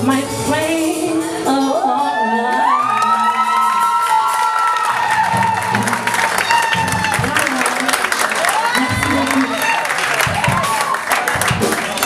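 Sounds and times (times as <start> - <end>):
live backing music: 0.0 - 12.0
audience cheering and applauding: 1.9 - 12.0.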